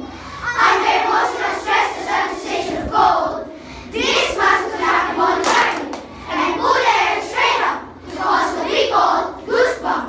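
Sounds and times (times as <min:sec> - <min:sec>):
children chanting in unison: 0:00.0 - 0:10.0.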